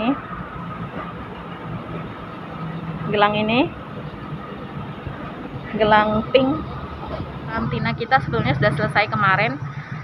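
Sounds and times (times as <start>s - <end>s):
street noise: 0.0s - 10.0s
vehicle engine idling: 0.0s - 10.0s.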